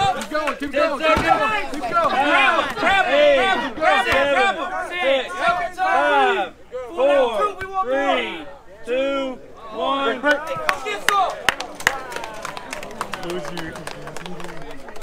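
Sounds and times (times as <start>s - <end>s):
men shouting short calls: 0.0s - 11.4s
crowd: 0.0s - 15.0s.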